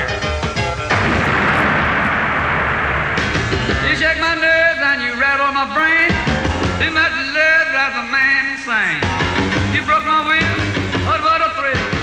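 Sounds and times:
pyrotechnic jets blasting: 0:00.8 - 0:05.6.

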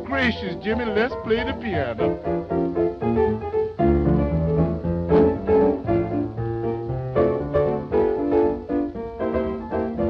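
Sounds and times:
lively piano tune: 0:00.0 - 0:10.0.

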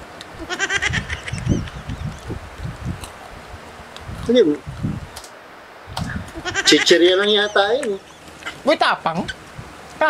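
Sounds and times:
person squealing: 0:06.3 - 0:07.7.

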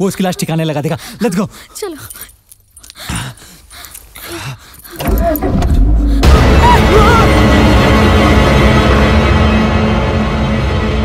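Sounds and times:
tense horror film score: 0:03.0 - 0:11.0.

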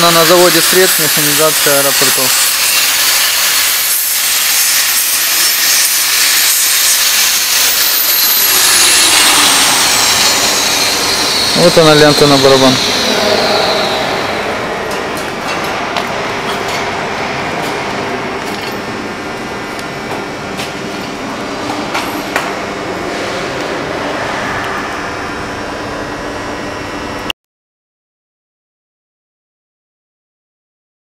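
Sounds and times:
factory machinery noise: 0:00.0 - 0:27.3.

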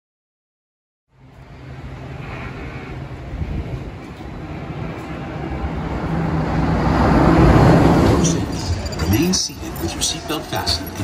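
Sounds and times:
ride vehicle rumbling: 0:01.1 - 0:11.0.

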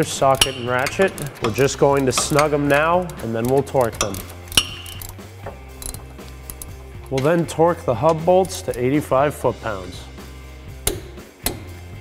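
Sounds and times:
ratchet clicking: 0:00.0 - 0:07.4, 0:08.0 - 0:09.0.

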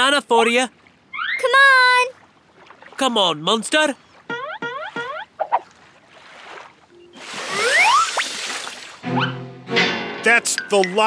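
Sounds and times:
whistle tones gliding upward: 0:01.1 - 0:01.5, 0:06.9 - 0:08.4, 0:09.1 - 0:09.5.

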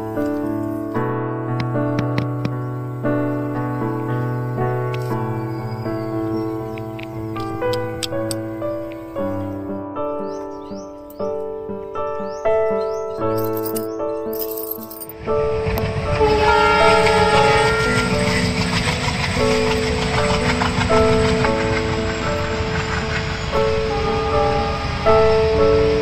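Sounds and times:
background music with simple melody: 0:00.0 - 0:26.0
train rumbling on track: 0:01.6 - 0:10.4, 0:15.1 - 0:26.0.

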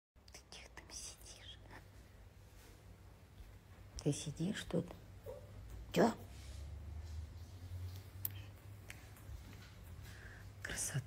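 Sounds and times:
person whispering: 0:00.2 - 0:02.0, 0:10.6 - 0:11.0.

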